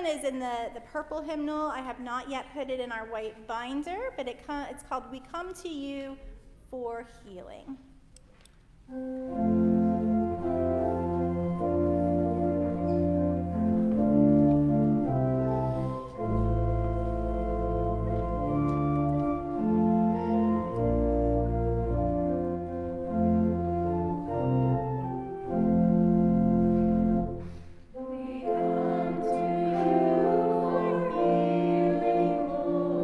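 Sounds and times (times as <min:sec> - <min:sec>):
church organ playing chords: 0:08.9 - 0:33.0
small choir singing a hymn: 0:27.9 - 0:33.0.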